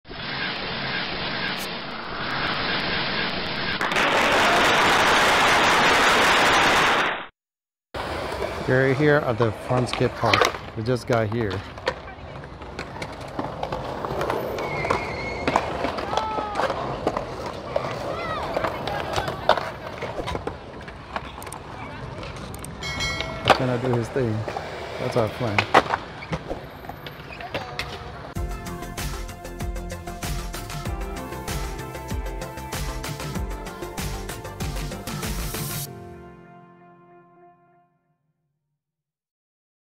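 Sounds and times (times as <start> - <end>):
skateboard wheels rolling on concrete: 0.1 - 7.3, 8.0 - 35.9
skateboard clacks: 8.0 - 28.4.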